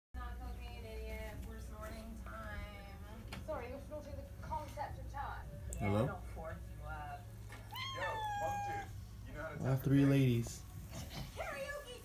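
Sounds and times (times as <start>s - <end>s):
cat meowing: 7.6s - 9.0s.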